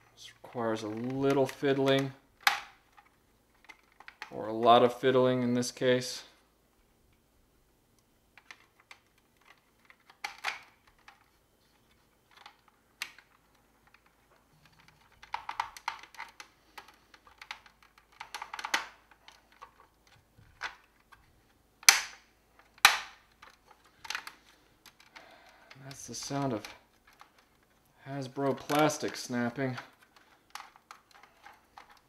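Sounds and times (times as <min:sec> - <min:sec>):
plastic toy parts clicking: 0:00.4 - 0:04.4, 0:08.4 - 0:11.3, 0:12.3 - 0:32.0
plastic tabs snapping: 0:08.4 - 0:11.3, 0:12.3 - 0:27.8, 0:28.4 - 0:32.0.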